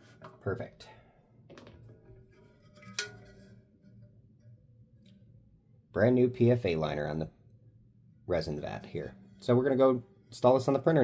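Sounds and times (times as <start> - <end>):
faint low hum: 0.2 - 11.0.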